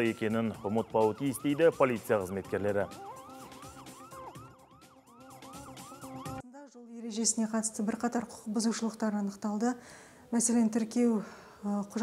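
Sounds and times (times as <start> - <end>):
police siren yelp: 0.0 - 6.4.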